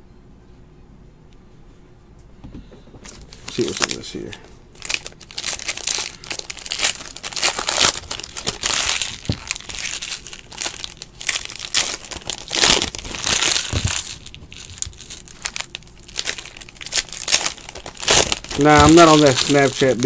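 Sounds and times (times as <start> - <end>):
foil wrapper crinkling and tearing: 3.1 - 20.0.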